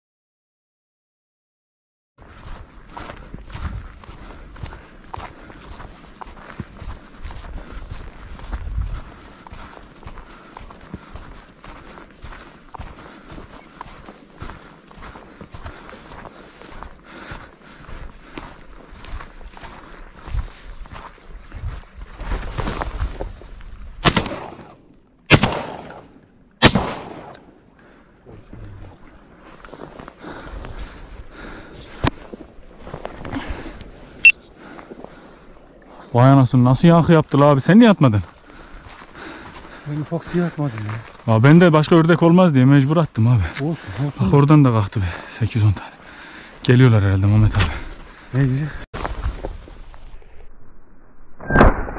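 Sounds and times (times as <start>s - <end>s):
shotgun shots echoing: 24.0s - 27.6s.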